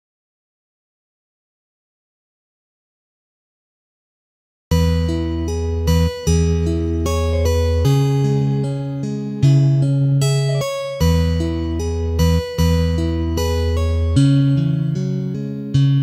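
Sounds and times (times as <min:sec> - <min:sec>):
fingerstyle guitar: 0:04.7 - 0:16.0.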